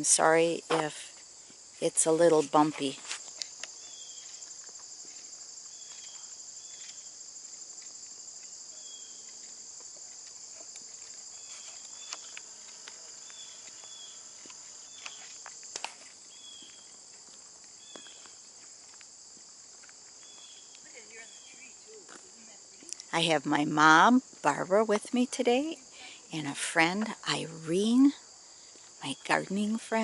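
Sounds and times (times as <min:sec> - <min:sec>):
insect chorus trilling: 0:00.0 - 0:30.0.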